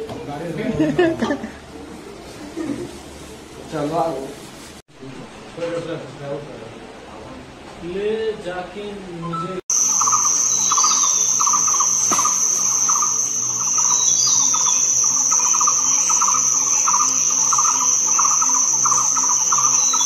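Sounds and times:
high-pitched insect shrill: 9.7s - 20.0s
insect chirping: 9.7s - 20.0s.

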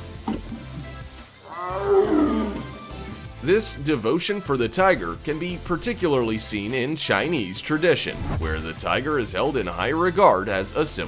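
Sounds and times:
background music: 0.0s - 11.0s
tiger call: 1.4s - 2.8s.

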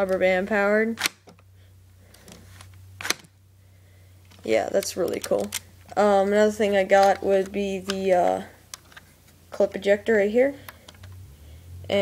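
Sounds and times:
plastic toy parts clicking: 4.3s - 6.0s.

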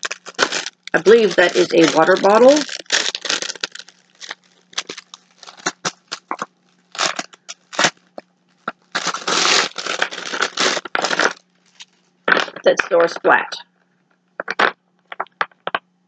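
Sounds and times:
plastic bag crinkling: 0.0s - 12.8s
faint low hum: 0.0s - 16.0s.

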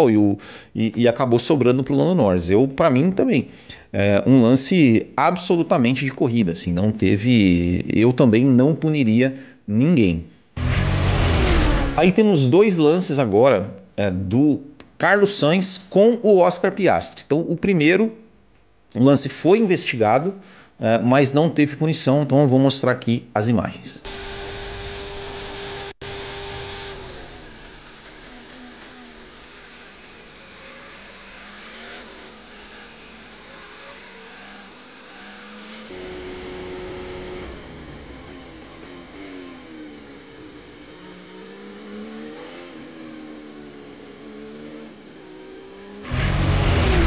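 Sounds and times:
racing car engine revving: 10.6s - 12.2s, 24.0s - 47.0s.

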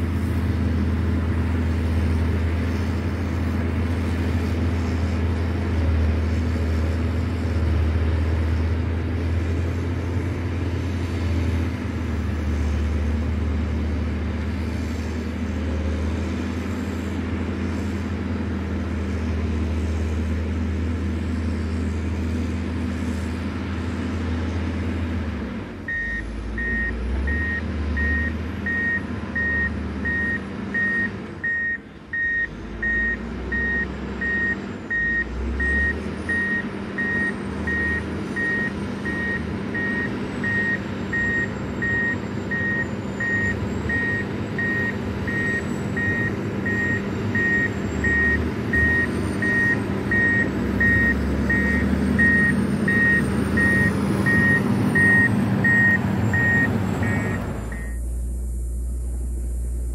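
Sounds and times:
diesel engine running: 0.0s - 59.9s
reversing alarm beeping: 25.9s - 58.1s.

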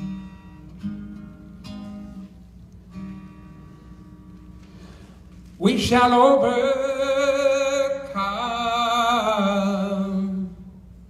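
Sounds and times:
acoustic guitar strummed chords: 0.0s - 11.0s.

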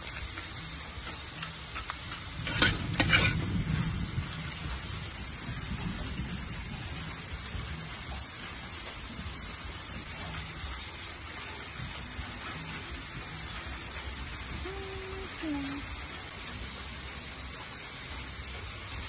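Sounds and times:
crab sizzling in a hot pan: 0.0s - 19.0s
metal ladle scraping a pan: 1.1s - 4.2s.

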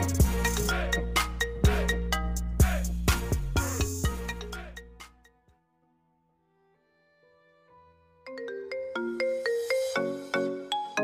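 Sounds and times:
hip-hop ringtone remix: 0.0s - 5.3s, 8.3s - 11.0s.

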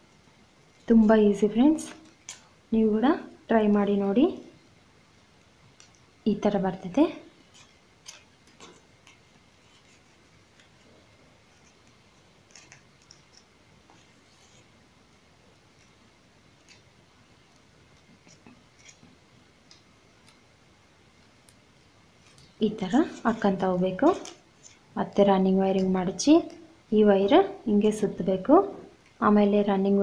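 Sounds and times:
plastic wire clicks and rustles: 7.5s - 10.8s.

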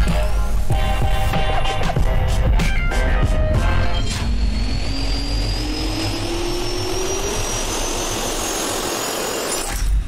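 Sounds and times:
rising jet engine whine: 0.0s - 10.0s
jet engine roar: 3.2s - 9.7s.

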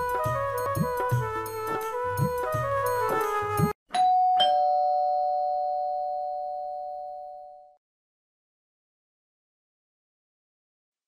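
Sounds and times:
two-tone doorbell chime: 3.9s - 7.7s.

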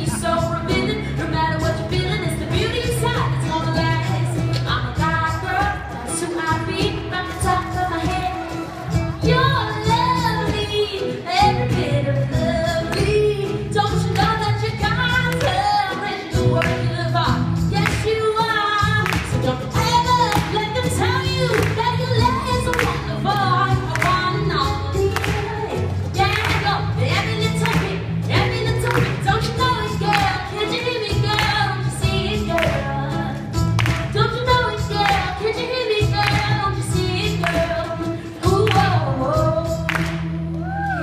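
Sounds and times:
live band playing: 0.0s - 41.0s
woman singing into microphone: 0.0s - 41.0s.

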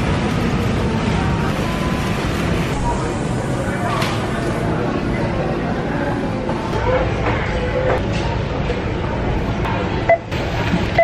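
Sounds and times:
indistinct chatter of shoppers: 0.0s - 11.0s
low store rumble: 0.0s - 11.0s.

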